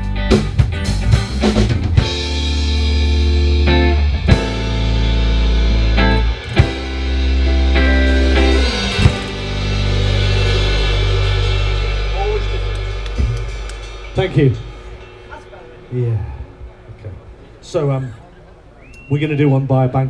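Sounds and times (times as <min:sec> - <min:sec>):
drum and chord hits: 0:00.0 - 0:18.0
live rock band playing: 0:00.0 - 0:19.0.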